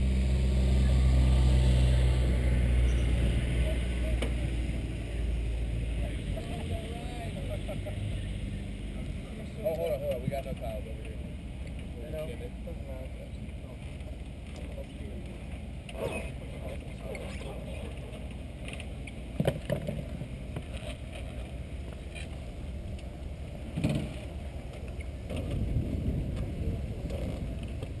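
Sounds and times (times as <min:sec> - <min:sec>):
low outdoor rumble: 0:00.0 - 0:28.0.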